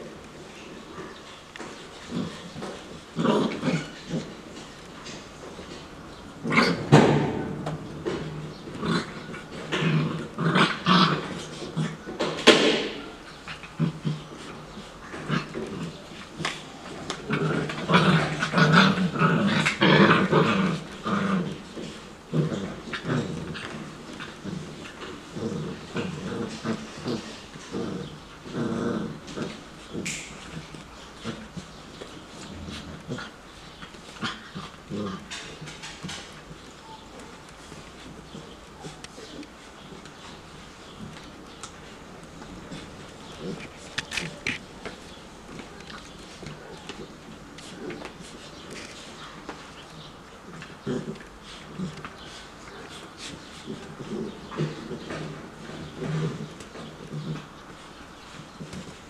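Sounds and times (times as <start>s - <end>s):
puppies growling: 0.0s - 59.0s.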